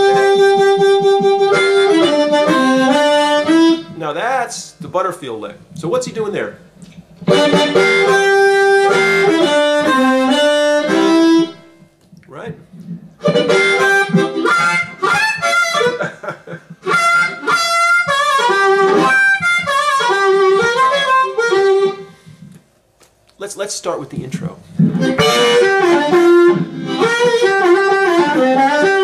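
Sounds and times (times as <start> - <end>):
harmonica playing: 0.0 - 4.4, 6.6 - 11.9, 12.7 - 22.5, 24.7 - 29.0.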